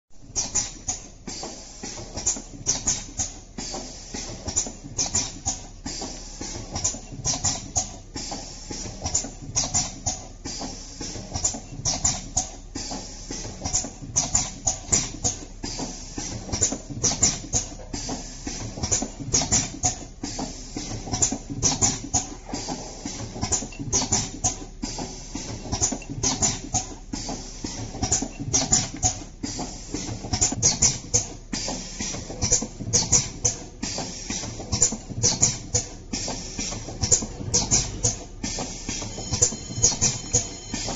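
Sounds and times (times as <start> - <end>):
machine hum: 32.8 - 40.9.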